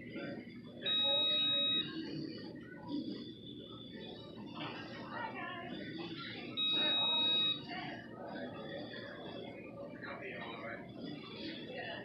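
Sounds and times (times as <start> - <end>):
faint low murmur: 0.0 - 12.0
electronic beep: 6.6 - 7.6.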